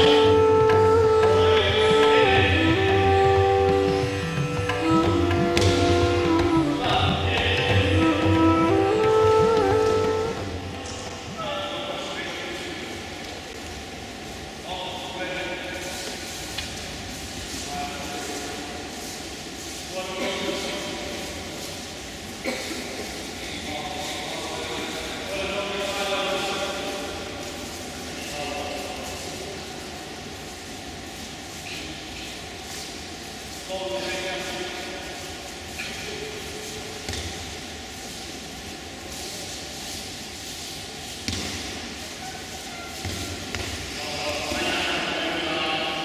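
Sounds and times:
background music: 0.0s - 11.8s
echoing murmur of crowd talking: 0.0s - 46.0s.

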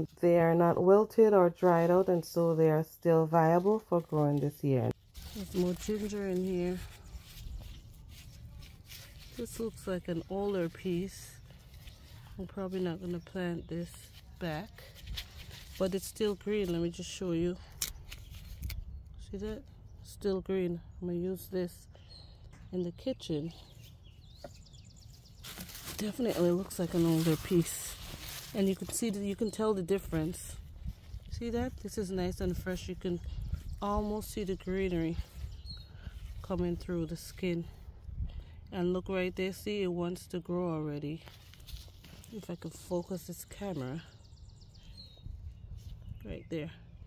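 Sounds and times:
hand digging in soil and leaves: 3.4s - 18.8s, 25.1s - 31.2s.

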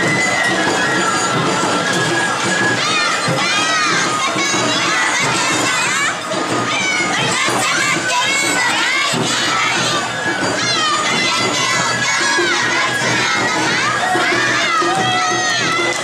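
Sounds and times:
women shouting dance calls: 2.7s - 16.0s.

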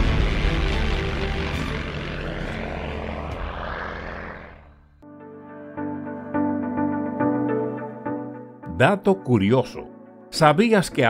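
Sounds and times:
propeller plane engine drone: 0.0s - 5.0s.

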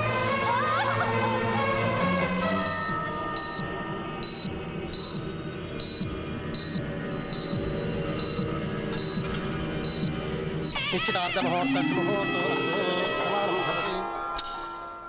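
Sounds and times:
background film music: 0.0s - 15.0s
heart monitor beeping: 2.6s - 10.9s.

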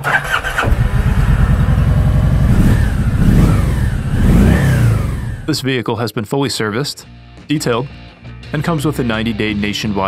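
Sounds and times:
motorcycle electric starter cranking: 0.0s - 3.1s
motorcycle engine running: 0.0s - 5.6s.

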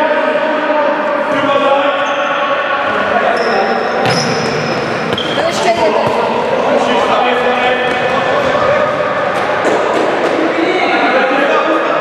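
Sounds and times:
shoes squeaking on hall floor: 2.0s - 6.6s.

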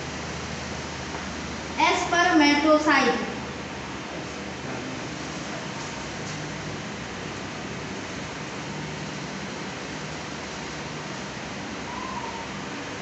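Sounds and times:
room background hiss: 0.0s - 13.0s.

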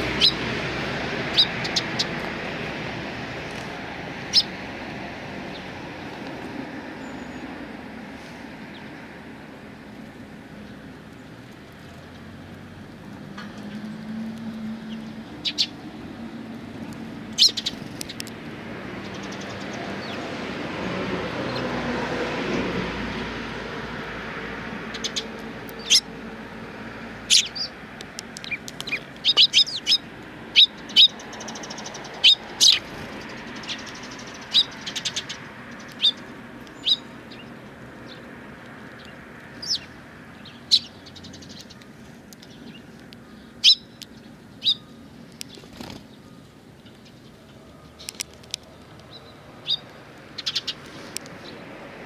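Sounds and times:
sparrows chirping: 0.0s - 21.9s, 22.9s - 52.0s.

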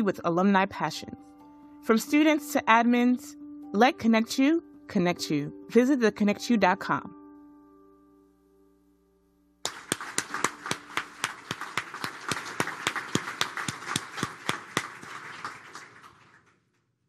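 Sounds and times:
audience applauding: 9.6s - 16.7s.

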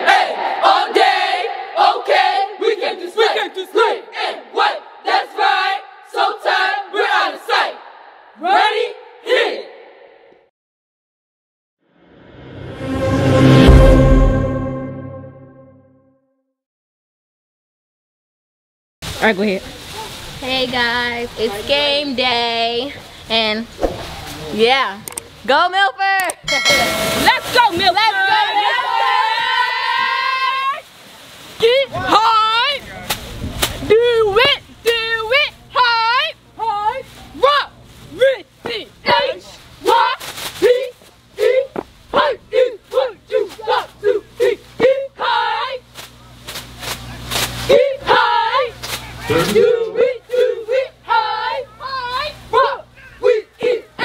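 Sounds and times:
cheerleaders shouting a cheer: 0.0s - 10.0s, 26.6s - 30.8s, 33.9s - 45.8s, 47.7s - 54.0s
sharp percussive hits: 26.4s - 27.6s.

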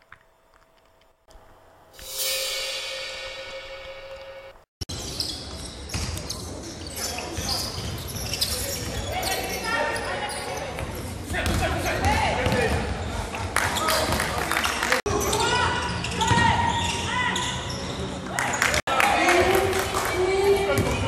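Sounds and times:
basketball bouncing on court: 10.8s - 13.0s.

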